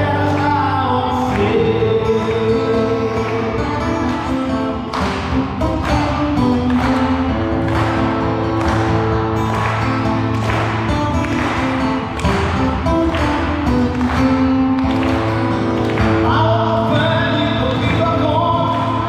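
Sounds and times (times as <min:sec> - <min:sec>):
person singing: 0:00.0 - 0:06.9, 0:16.0 - 0:19.0
acoustic guitar strumming: 0:00.0 - 0:19.0.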